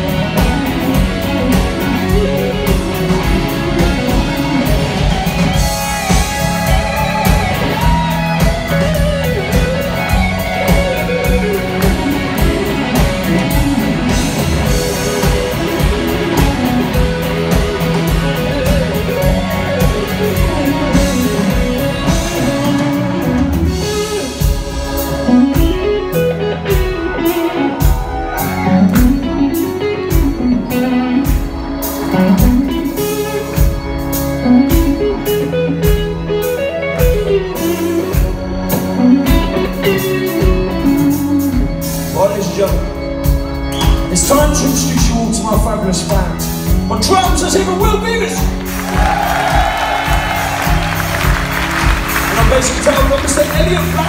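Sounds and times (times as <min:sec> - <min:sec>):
electric guitar bending notes: 0:00.0 - 0:42.2
blues-rock band playing: 0:00.0 - 0:54.0.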